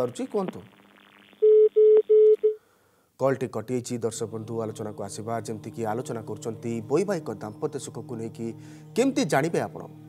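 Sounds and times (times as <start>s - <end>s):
short telephone beeps: 1.4s - 2.6s.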